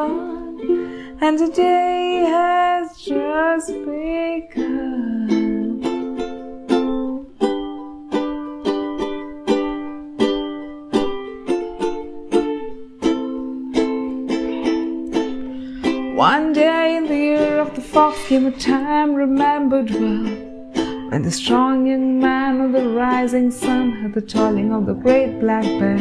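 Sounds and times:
ukulele strumming: 0:00.0 - 0:26.0.

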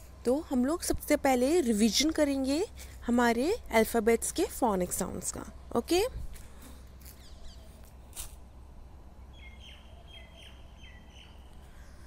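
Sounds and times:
low steady hum: 0:00.0 - 0:12.0
faint bird chirping: 0:07.1 - 0:08.1, 0:09.1 - 0:12.0.

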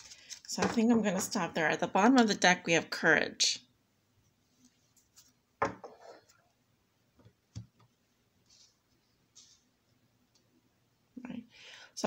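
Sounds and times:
breathy inhale: 0:11.5 - 0:12.0.

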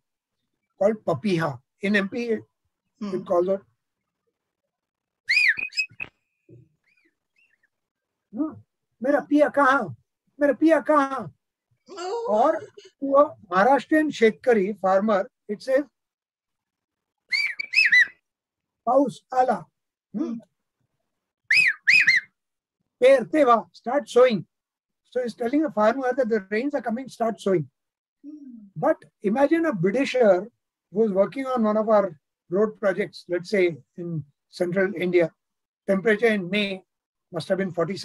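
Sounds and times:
man whistling bird call: 0:05.3 - 0:06.3, 0:17.3 - 0:18.1, 0:21.5 - 0:22.2.

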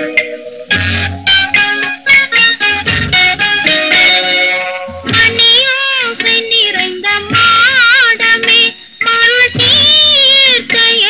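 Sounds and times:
woman singing with vibrato: 0:05.0 - 0:11.0.

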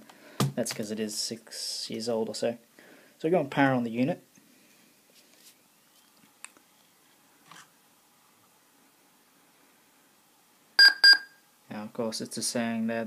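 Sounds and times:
laptop high beeps: 0:10.8 - 0:11.4.

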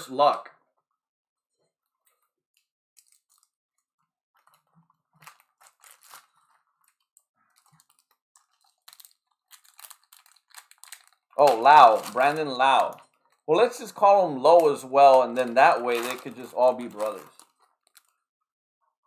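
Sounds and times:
foil wrappers crinkling: 0:04.4 - 0:18.2.

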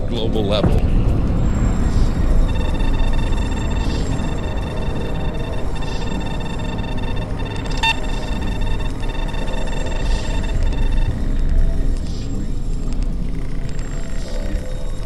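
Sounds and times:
deep steady rumble: 0:00.0 - 0:14.9
held high tone: 0:02.2 - 0:11.6.

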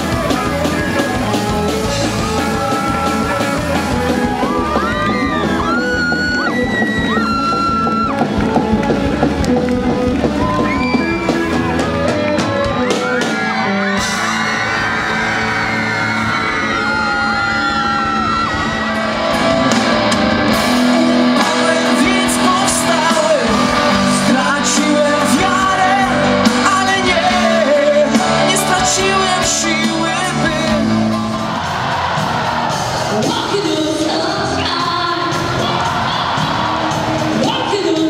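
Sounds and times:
lead singer singing: 0:00.0 - 0:08.1, 0:20.3 - 0:31.9, 0:32.8 - 0:38.0
rock band playing live: 0:00.0 - 0:38.0.

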